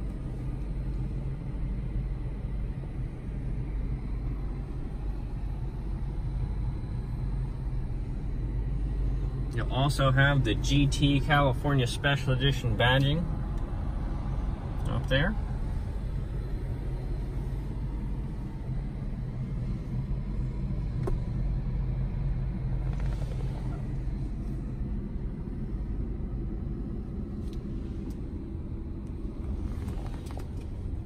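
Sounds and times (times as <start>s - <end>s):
car cabin rumble: 0.0s - 31.0s.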